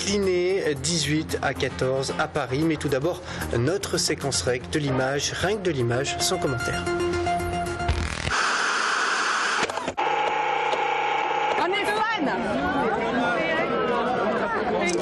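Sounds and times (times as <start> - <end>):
static hiss: 8.0 - 11.6
crowd chattering: 11.6 - 15.0.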